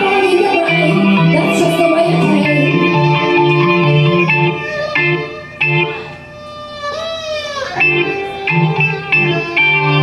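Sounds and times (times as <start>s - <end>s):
bowed violin: 0.0s - 10.0s
low keyboard notes: 0.0s - 10.0s.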